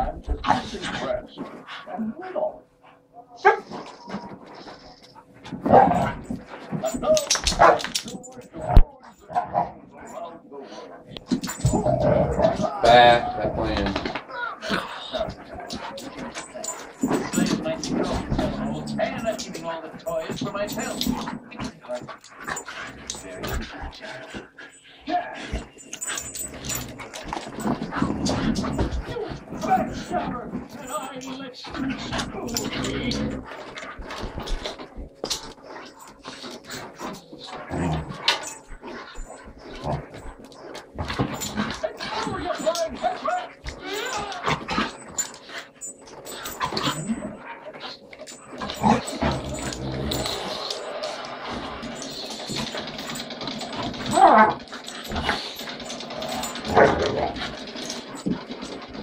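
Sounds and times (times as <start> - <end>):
dogs play-fighting: 0.0 - 59.0
dogs scuffling: 2.8 - 59.0.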